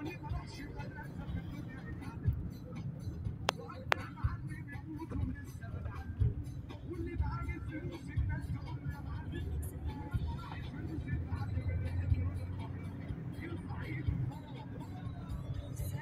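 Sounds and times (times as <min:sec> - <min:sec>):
car engine and tyres rumbling: 0:00.0 - 0:16.0.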